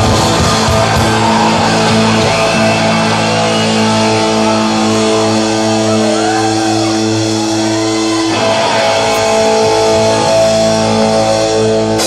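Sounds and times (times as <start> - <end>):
electric guitar and bass chord: 0.0 - 12.0.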